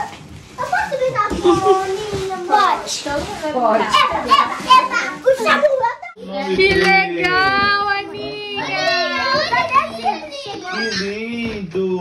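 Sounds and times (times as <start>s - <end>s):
children shouting and squealing: 3.8s - 11.3s.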